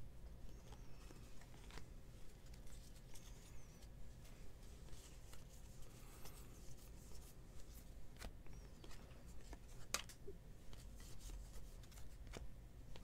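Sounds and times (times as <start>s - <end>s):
cards clicking and sliding: 4.8s - 13.0s.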